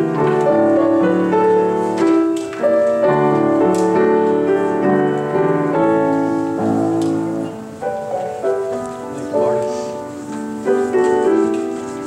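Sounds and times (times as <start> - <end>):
paper page turn rustle: 0.0 - 4.5, 8.0 - 12.0
grand piano chords: 0.0 - 12.0.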